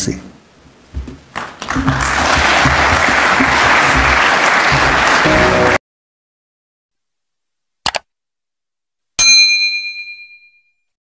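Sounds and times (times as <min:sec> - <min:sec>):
bell ding: 0:09.2 - 0:10.8.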